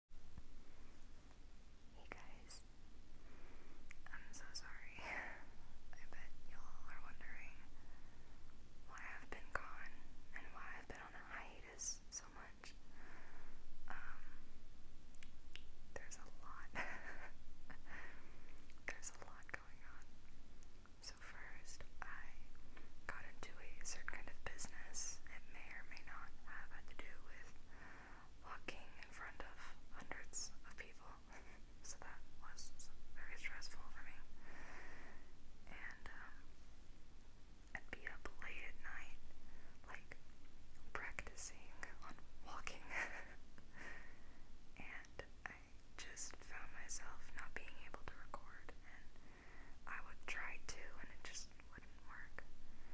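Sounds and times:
woman whispering: 1.9 - 2.7, 3.9 - 7.8, 8.8 - 12.8, 13.8 - 14.4, 15.9 - 18.0, 18.8 - 20.1, 21.0 - 27.6, 28.4 - 34.4, 35.6 - 36.5, 37.7 - 39.2, 39.8 - 40.2, 40.9 - 43.4, 44.8 - 49.1, 49.8 - 52.5.

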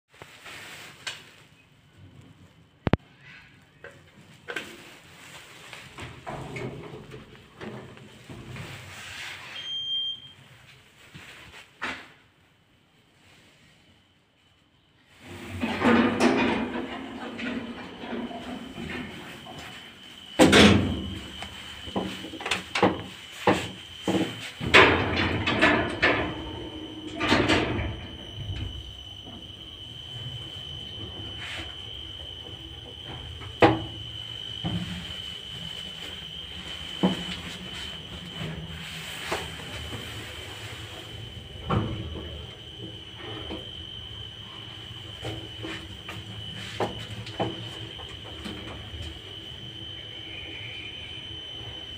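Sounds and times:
constant high whine: 12.6 - 51.9
lift cab humming: 15.2 - 51.9
lift doors knocking and banging: 15.4 - 19.7, 20.4 - 21.3, 22.7 - 29.4.

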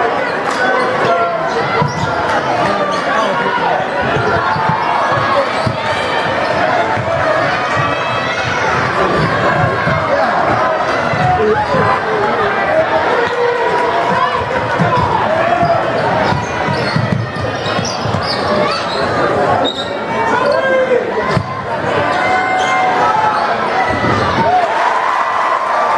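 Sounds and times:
crowd calling and shouting: 0.0 - 25.9
basketball bouncing on hardwood floor: 14.1 - 18.4.

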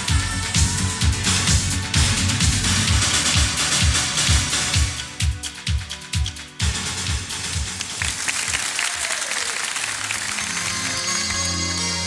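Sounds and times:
pop song kick drum beat: 0.0 - 8.0
audience applauding: 7.6 - 12.0.

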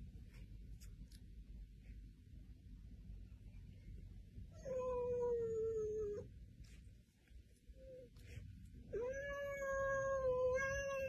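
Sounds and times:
cat meowing: 8.9 - 11.0.

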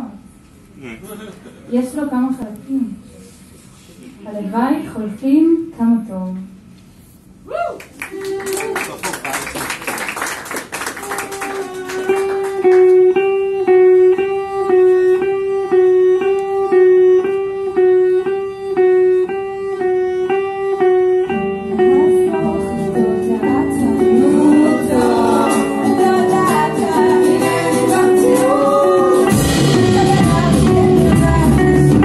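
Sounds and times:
violin: 11.0 - 28.4
guitars strummed: 11.3 - 32.0
repeated guitar note pulse: 11.3 - 32.0.

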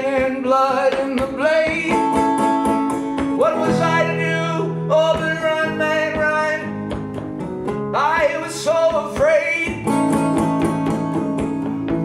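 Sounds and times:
acoustic guitar strummed: 0.0 - 12.0
man's wordless sung wails: 3.4 - 6.7.

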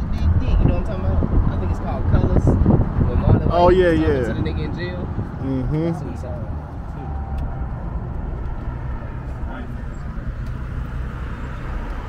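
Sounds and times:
car engine rumble inside cabin: 0.0 - 12.0.

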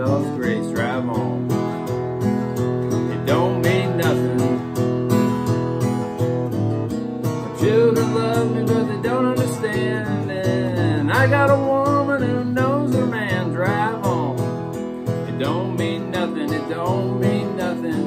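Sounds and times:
wordless voice singing: 0.0 - 1.7, 2.9 - 5.1, 7.4 - 18.0
acoustic guitar strumming: 0.0 - 18.0.

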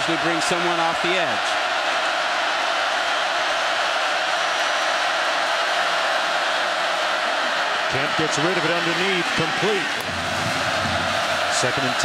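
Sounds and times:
stadium crowd roaring: 0.0 - 12.0.

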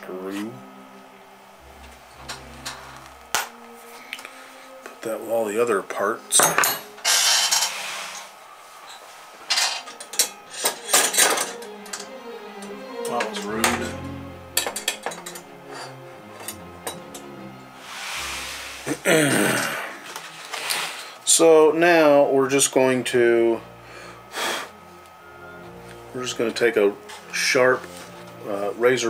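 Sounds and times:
background music: 0.0 - 29.0
metal tools clinking and rattling: 6.4 - 7.8, 8.9 - 12.1, 14.6 - 15.5
person speaking: 12.2 - 14.5.

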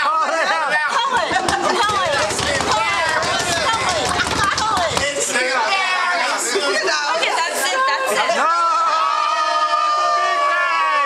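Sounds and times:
people talking and laughing: 0.0 - 11.0.

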